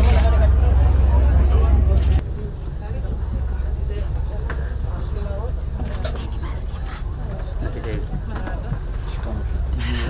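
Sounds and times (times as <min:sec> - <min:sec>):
ferry engine rumble: 0:00.0 - 0:10.0.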